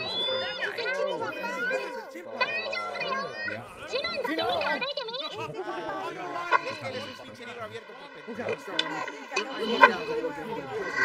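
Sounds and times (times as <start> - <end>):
high-pitched voices talking: 0.0 - 11.0.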